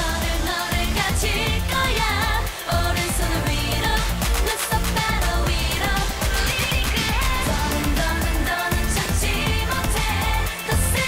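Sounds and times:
dance-pop backing track: 0.0s - 11.0s
woman singing lead vocal: 0.0s - 11.0s.

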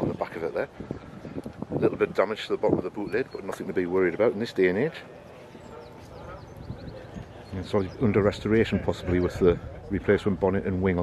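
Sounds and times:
distant voices: 0.0s - 11.0s
bird calls: 2.9s - 10.3s.

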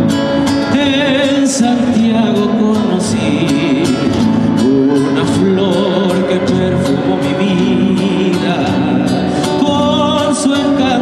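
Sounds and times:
live folk band music: 0.0s - 11.0s.

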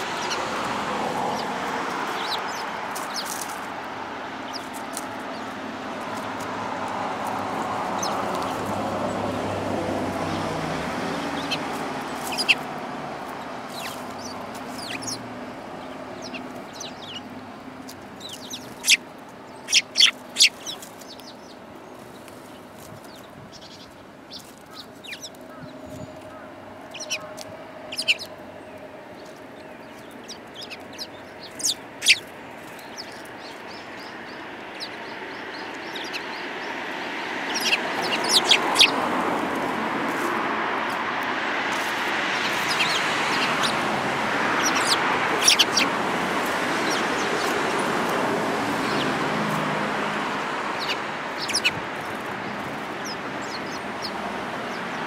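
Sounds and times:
sparrows chirping: 0.0s - 55.0s
steady rushing noise: 26.6s - 55.0s.

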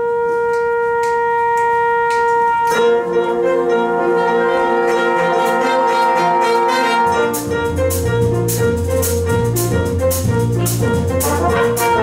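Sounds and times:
horn holding long note: 0.0s - 7.4s.

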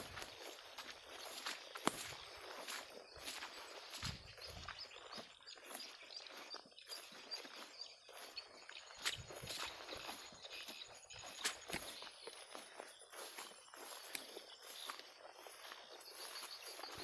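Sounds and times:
footsteps through grass and brush: 0.0s - 17.0s.

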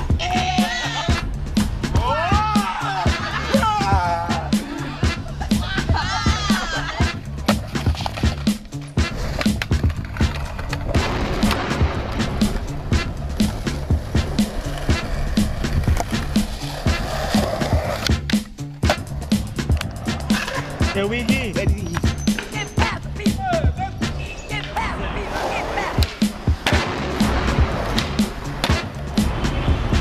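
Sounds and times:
music with steady beat: 0.0s - 24.8s, 26.0s - 30.0s
skateboard wheels rolling: 5.8s - 30.0s
skateboard grinding concrete: 6.2s - 23.3s, 24.0s - 30.0s.

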